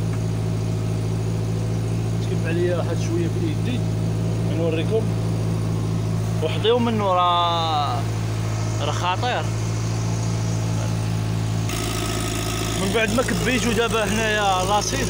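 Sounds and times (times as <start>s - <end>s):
pump engine humming: 11.6s - 15.0s.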